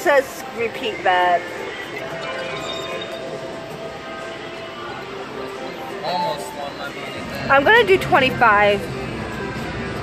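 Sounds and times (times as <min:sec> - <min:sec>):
casino background noise: 0:00.0 - 0:10.0
electronic slot machine music: 0:00.0 - 0:10.0.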